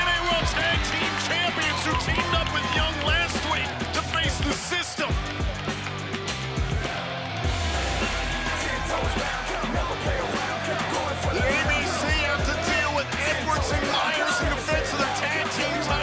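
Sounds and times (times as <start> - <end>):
crowd shouting: 0.0 - 5.1, 6.6 - 16.0
music with steady bass line: 0.0 - 16.0.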